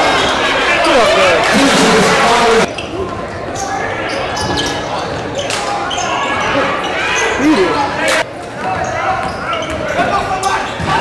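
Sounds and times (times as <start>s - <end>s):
spectators shouting and chattering: 0.0s - 11.0s.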